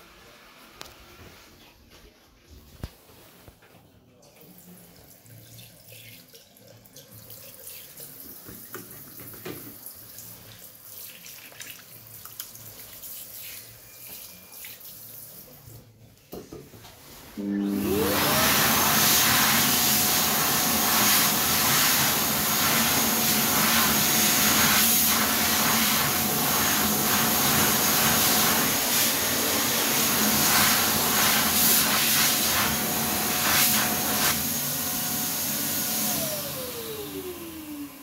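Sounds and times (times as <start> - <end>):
hand dryer whining and blowing: 17.2 - 38.0.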